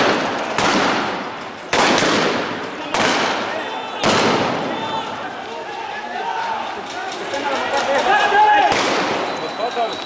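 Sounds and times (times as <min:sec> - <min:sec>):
gunshot-like bangs with echo: 0:00.0 - 0:04.7, 0:08.7 - 0:09.2.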